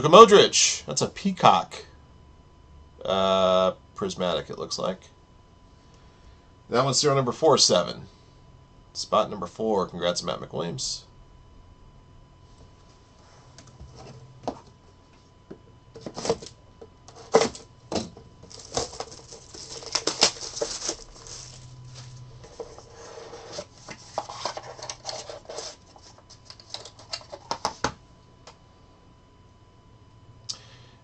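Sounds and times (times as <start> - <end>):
plastic shrink-wrap crinkling: 18.4 - 22.2.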